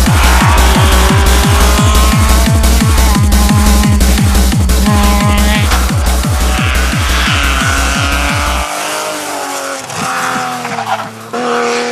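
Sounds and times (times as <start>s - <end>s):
electronic dance music: 0.0s - 9.0s
car engine revving: 0.0s - 11.9s.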